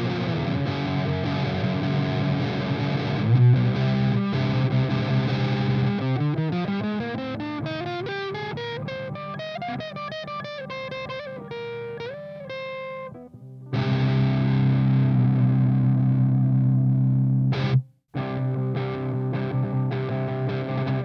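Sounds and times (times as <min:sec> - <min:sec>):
distorted electric guitar: 0:00.0 - 0:21.0.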